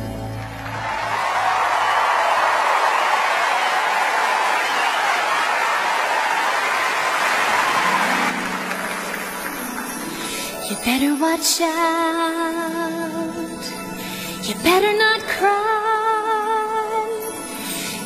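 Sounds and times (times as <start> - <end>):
audience applauding: 0.0 - 10.6.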